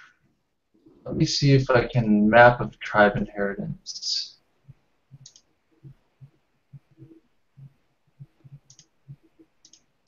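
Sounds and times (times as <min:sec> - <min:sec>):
mouse clicks: 0:05.2 - 0:06.0, 0:08.3 - 0:08.9, 0:09.6 - 0:09.9
computer keyboard typing: 0:08.2 - 0:09.9.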